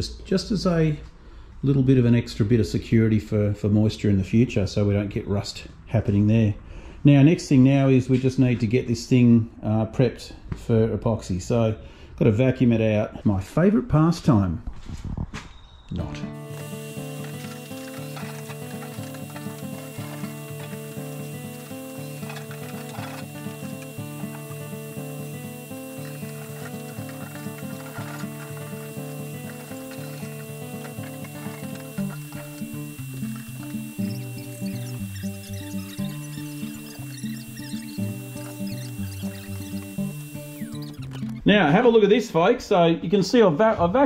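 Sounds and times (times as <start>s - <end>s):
instrumental background music: 16.0s - 41.6s.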